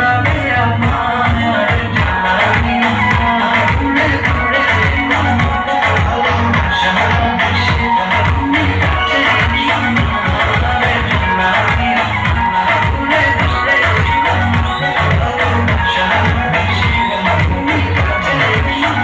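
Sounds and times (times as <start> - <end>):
loud dance music: 0.0 - 19.0.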